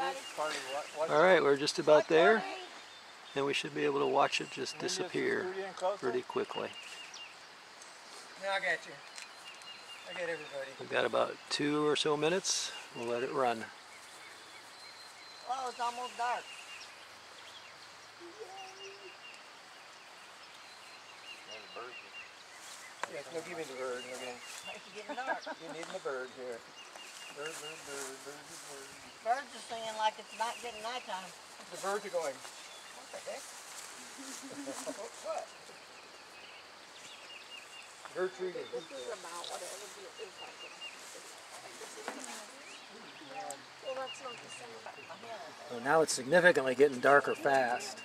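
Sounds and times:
murmured voices: 0:00.0 - 0:06.8, 0:18.2 - 0:19.2, 0:38.1 - 0:48.0
faint birdsong chirps: 0:00.0 - 0:48.0.

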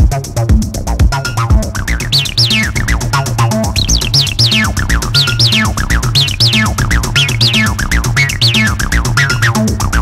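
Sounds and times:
drum machine beat: 0:00.0 - 0:10.0
squelching acid synth bass line: 0:00.0 - 0:10.0.

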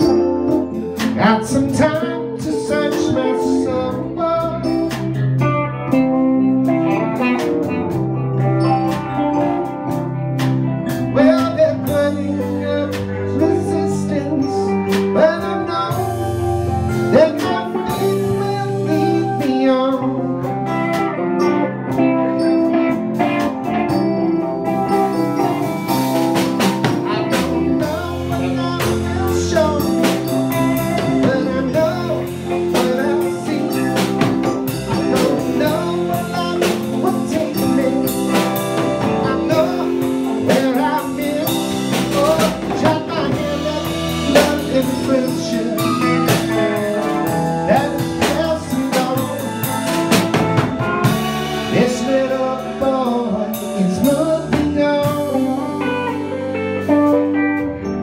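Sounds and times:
bass: 0:00.0 - 0:58.0
drum kit: 0:00.0 - 0:58.0
guitar: 0:00.0 - 0:58.0.

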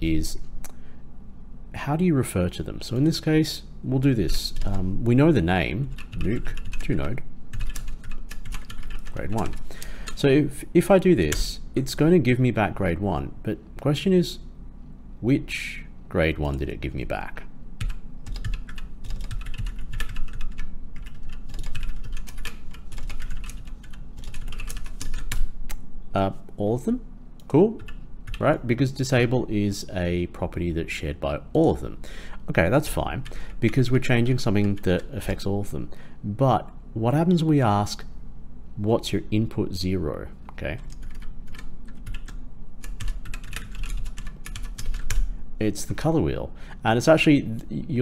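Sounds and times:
typing on computer keyboard: 0:07.5 - 0:09.6, 0:17.8 - 0:25.4, 0:40.9 - 0:45.2.

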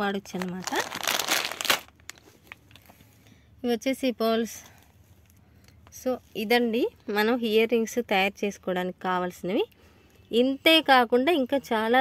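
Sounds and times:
plastic packet crinkling: 0:00.2 - 0:02.9.

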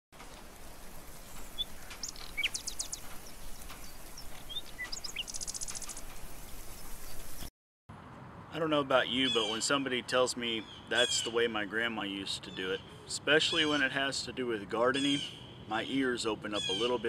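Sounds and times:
songbirds chirping: 0:00.2 - 0:07.5, 0:08.4 - 0:17.0
steady background hiss: 0:00.2 - 0:07.5.

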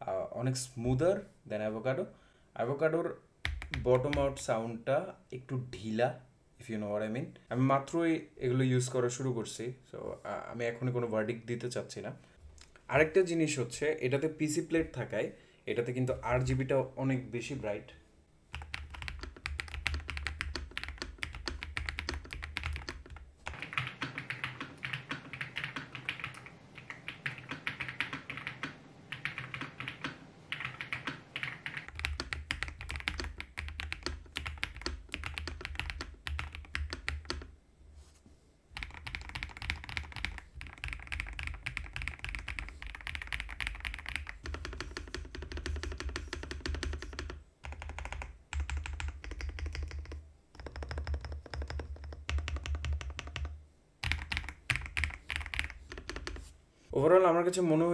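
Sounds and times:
fast typing on mechanical keyboard: 0:03.4 - 0:04.4, 0:18.5 - 0:37.5, 0:38.8 - 0:56.4.

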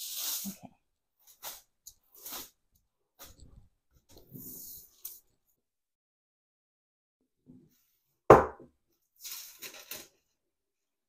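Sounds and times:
cloth rubbing over aluminium foil: 0:00.0 - 0:02.6.

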